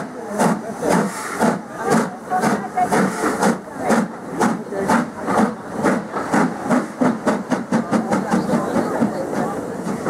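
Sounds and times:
steam hissing: 0.0 - 10.0
steam locomotive exhaust beats: 0.0 - 10.0.

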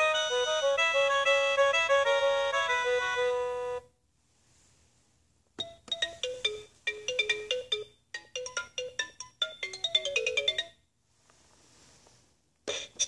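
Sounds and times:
electronic xylophone toy melody: 0.0 - 3.8, 5.6 - 10.8.

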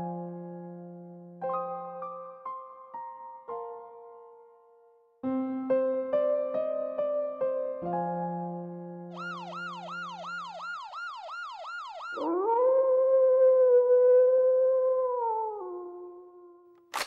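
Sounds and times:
long gliding howl: 12.2 - 16.6.

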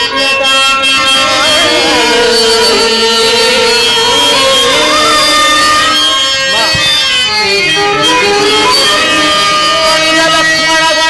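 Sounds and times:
harmonium: 0.0 - 11.0
violin melody: 0.8 - 10.8.

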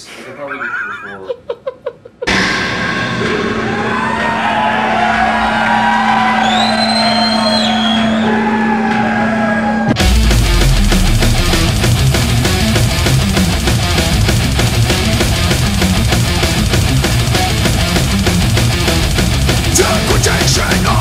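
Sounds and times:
high gliding guitar tones: 2.2 - 21.0
distorted guitars ringing chord: 2.3 - 21.0
fast dense drumming: 9.9 - 21.0.

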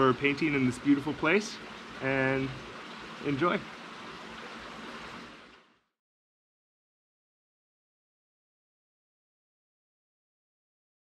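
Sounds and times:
outdoor background rush: 0.0 - 5.7.

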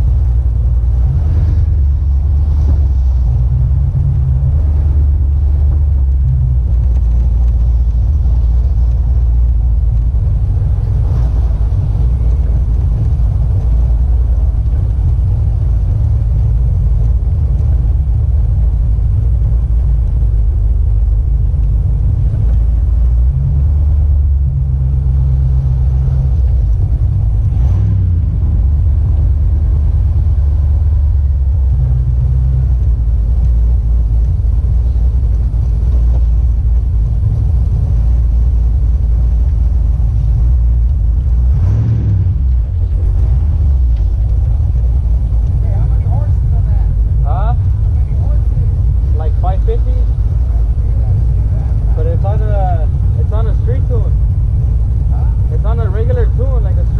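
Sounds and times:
truck engine deep rumble: 0.0 - 56.9.

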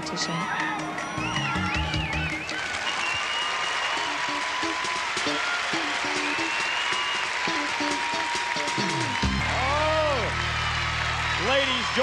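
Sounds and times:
audience applauding: 0.0 - 12.0
background music: 0.0 - 12.0.

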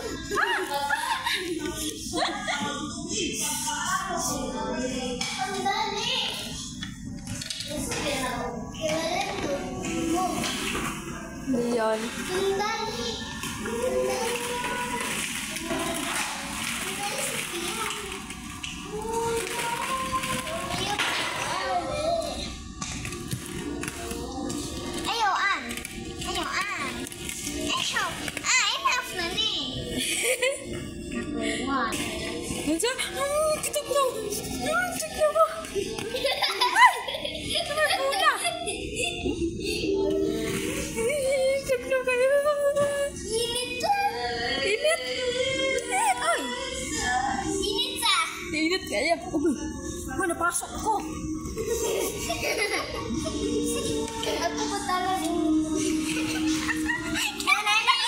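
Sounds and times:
background chatter: 0.0 - 58.0
child singing: 12.2 - 22.8, 32.8 - 48.5, 51.6 - 58.0.

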